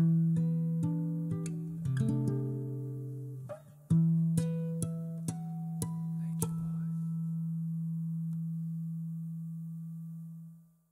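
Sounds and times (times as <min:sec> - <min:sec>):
plucked guitar note: 0:00.0 - 0:08.4.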